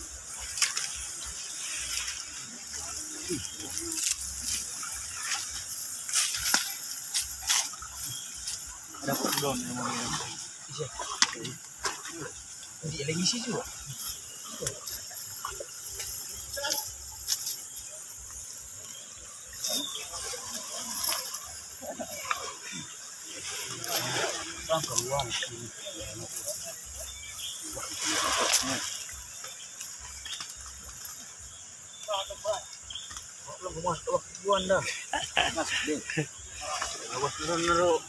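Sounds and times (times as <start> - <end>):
steady high hiss: 0.0 - 38.0
net rustling against stones: 0.1 - 10.7.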